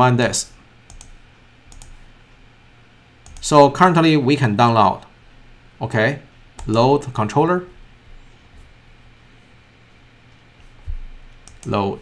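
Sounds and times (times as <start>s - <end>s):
faint computer clicks: 0.9s - 2.0s, 3.2s - 3.5s, 6.6s - 7.2s, 11.4s - 11.9s.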